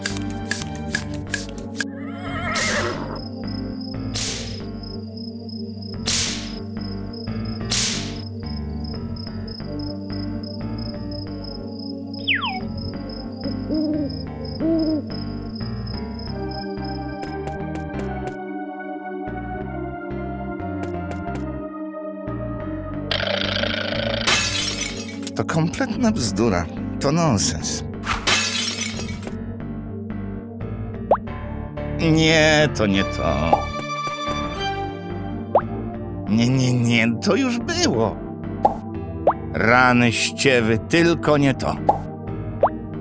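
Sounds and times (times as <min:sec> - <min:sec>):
background music: 0:00.0 - 0:43.0
owl hoots: 0:13.4 - 0:15.1.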